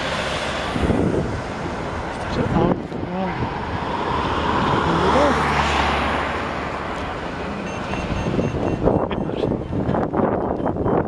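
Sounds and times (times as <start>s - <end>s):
vehicle passing by: 0.0s - 9.6s
street noise: 0.0s - 11.0s.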